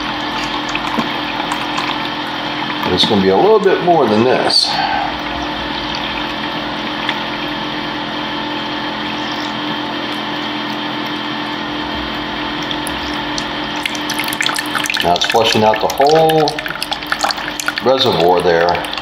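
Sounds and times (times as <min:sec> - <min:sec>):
water pouring into plastic cup: 0:00.0 - 0:03.2, 0:12.1 - 0:19.0
pump humming: 0:00.0 - 0:19.0.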